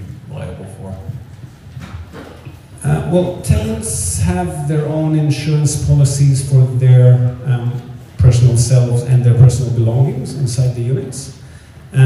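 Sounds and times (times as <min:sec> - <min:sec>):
man's hesitant voice in hall: 0:02.5 - 0:12.0.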